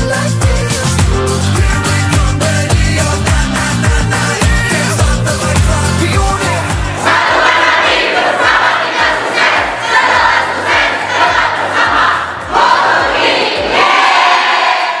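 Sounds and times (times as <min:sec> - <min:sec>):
crowd chanting in unison: 0:06.6 - 0:15.0.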